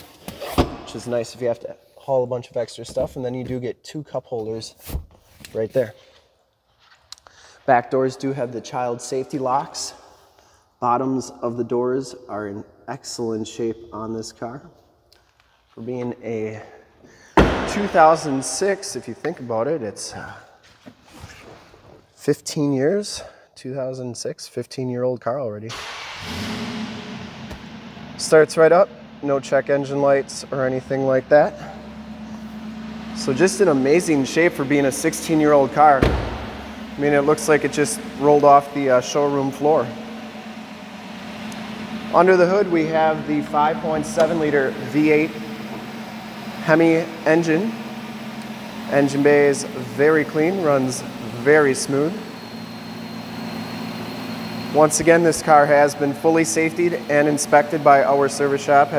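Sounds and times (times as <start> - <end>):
car engine starting and idling: 0.0 - 1.6, 15.7 - 20.8, 25.7 - 58.9
faint high whine: 28.2 - 58.9.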